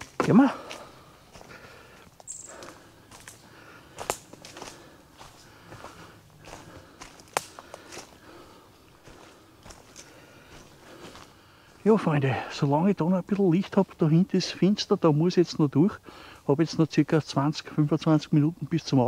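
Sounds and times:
twigs cracking: 0.0s - 8.4s, 9.0s - 11.4s
footsteps crunching dry leaves: 0.0s - 12.2s.

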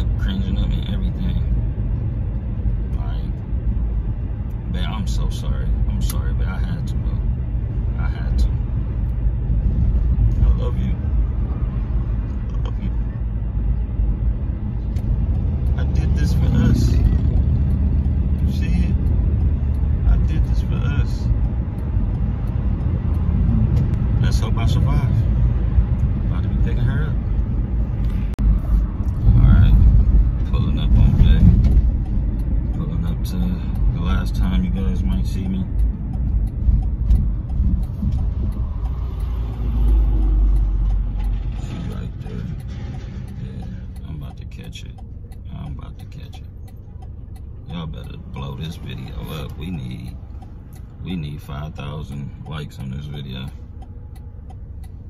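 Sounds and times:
car cabin road and engine rumble: 0.0s - 55.0s.

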